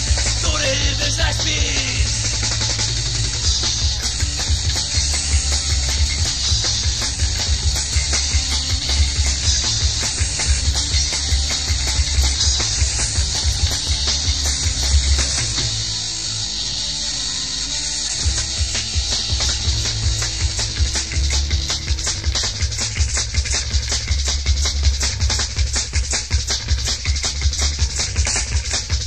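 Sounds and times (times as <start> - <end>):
rock band instrumental: 0.0 - 29.0.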